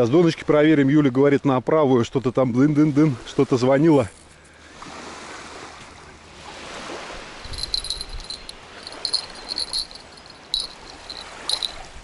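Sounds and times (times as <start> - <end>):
small waves lapping on shore: 0.0 - 12.0.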